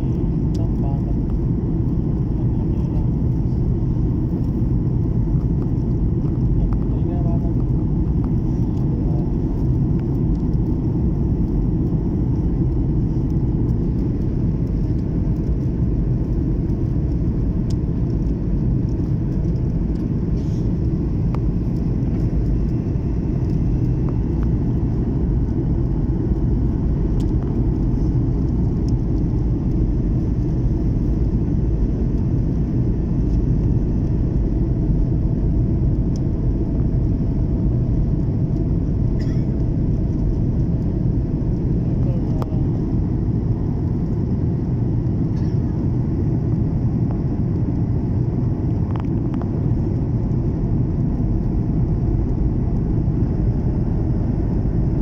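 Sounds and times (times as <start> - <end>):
airliner cabin engine rumble: 0.0 - 55.0.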